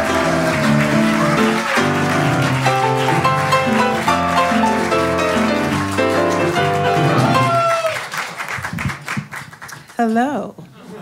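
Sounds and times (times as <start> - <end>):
audience applauding: 0.0 - 10.1.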